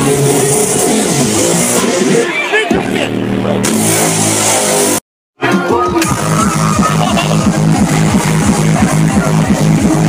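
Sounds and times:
loud electronic dance music: 0.0s - 10.0s.

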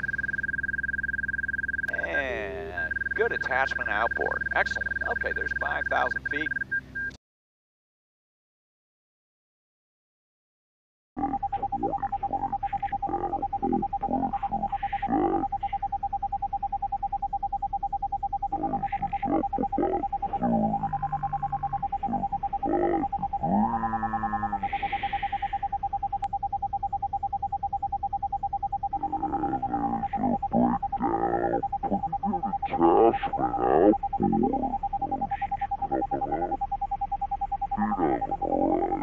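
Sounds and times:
throbbing hum-like tone: 0.0s - 6.6s, 16.4s - 39.0s
pitch-shifted voice-like sounds: 1.9s - 6.5s, 18.6s - 21.2s, 29.1s - 36.6s, 37.8s - 39.0s.

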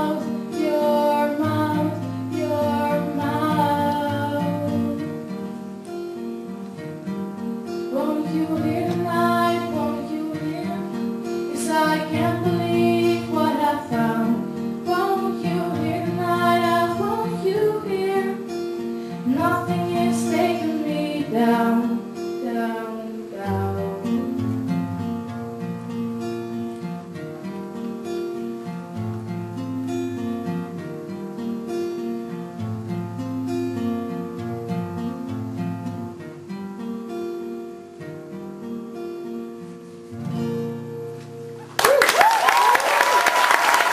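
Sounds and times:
woman singing: 0.0s - 5.4s, 7.9s - 24.8s
acoustic guitar: 0.0s - 43.9s.

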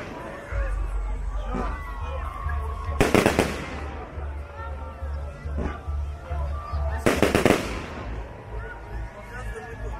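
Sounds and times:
firework bursting with crackling pops: 3.0s - 4.0s, 7.0s - 8.2s.

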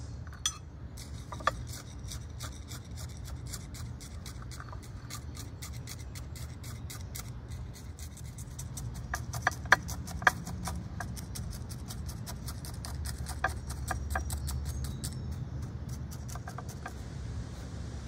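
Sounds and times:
chopstick scratching gritty soil: 1.0s - 17.1s.

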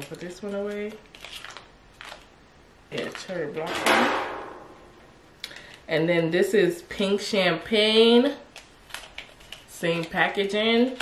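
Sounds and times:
packaging rustling: 0.2s - 2.3s.

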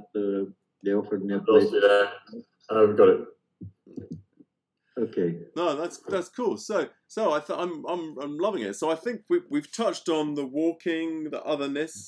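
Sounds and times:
man speaking: 0.0s - 3.3s, 5.0s - 12.0s.

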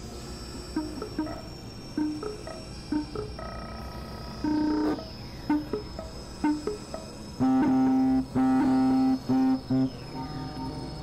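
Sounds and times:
experimental synthesizer music: 0.7s - 3.8s, 4.4s - 10.7s
thin high-pitched tone: 0.8s - 3.4s.

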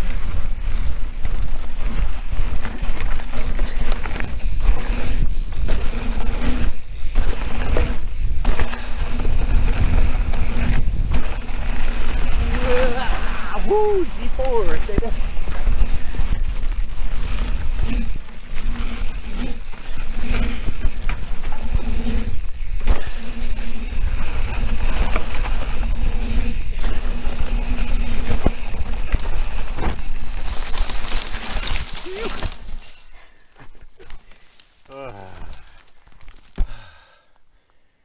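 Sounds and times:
wind rumble on microphone: 0.0s - 30.6s
bike rattling over bumps: 0.0s - 37.4s
tyres crunching over dirt: 0.0s - 37.5s
bike sliding into dry grass: 1.7s - 37.2s.

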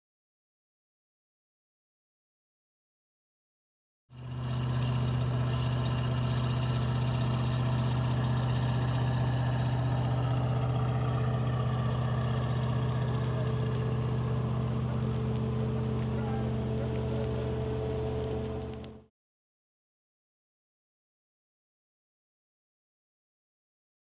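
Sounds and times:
fire engine running: 4.2s - 19.1s.

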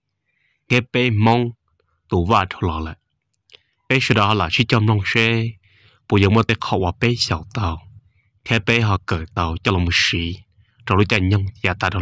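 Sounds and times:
man speaking: 0.7s - 3.0s, 3.9s - 12.0s.

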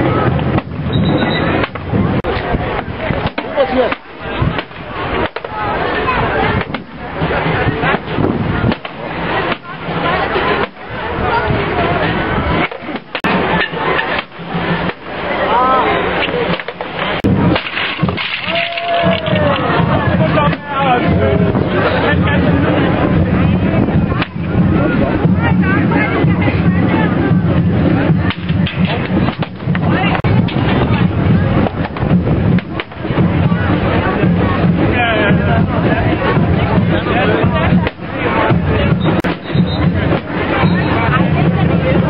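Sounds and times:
barrel drums beaten: 0.0s - 11.0s, 16.5s - 42.0s
crowd chatter: 0.0s - 42.0s
sticks striking wooden barrel: 0.3s - 2.5s, 3.1s - 5.6s, 6.6s - 7.0s, 7.8s - 9.8s, 10.6s - 10.8s, 12.6s - 15.1s, 16.2s - 19.6s, 28.2s - 30.7s, 37.8s - 38.0s.

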